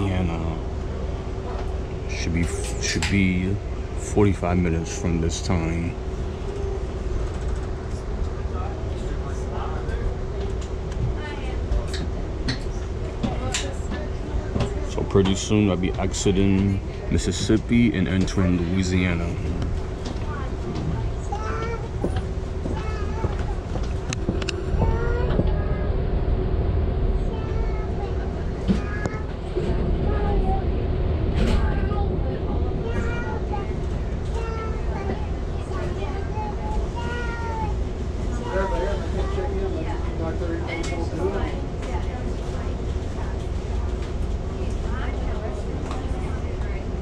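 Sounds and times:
passenger train rumbling: 0.0 - 47.0
passengers chattering: 0.0 - 47.0.

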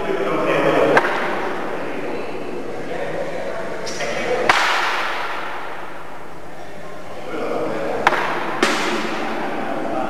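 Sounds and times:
murmuring voices: 0.0 - 10.0.

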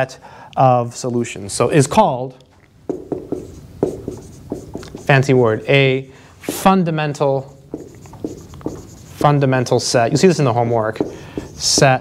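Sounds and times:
marker writing on a whiteboard: 2.8 - 12.0.

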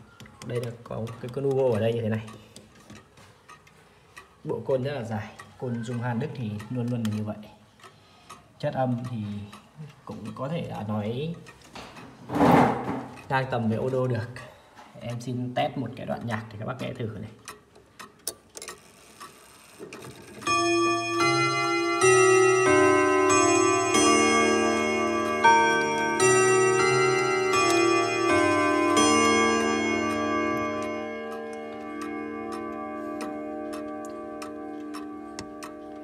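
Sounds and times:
clock ticking: 0.0 - 36.0
clock chime rods melody: 20.2 - 36.0.

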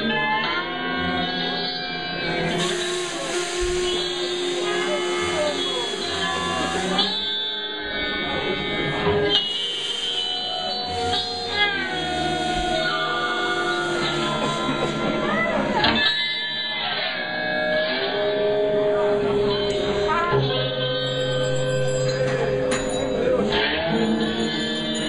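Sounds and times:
electric guitar sliding notes: 0.0 - 25.0
voices: 2.5 - 25.0.

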